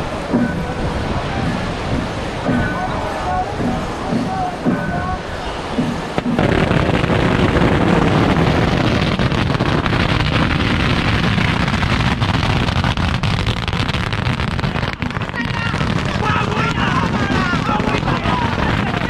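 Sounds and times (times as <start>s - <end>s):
crowd voices: 0.0s - 19.0s
firecrackers crackling: 0.0s - 19.0s.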